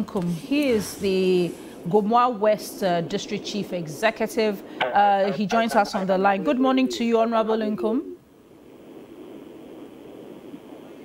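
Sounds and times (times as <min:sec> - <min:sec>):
telephone line hiss: 0:05.2 - 0:11.0.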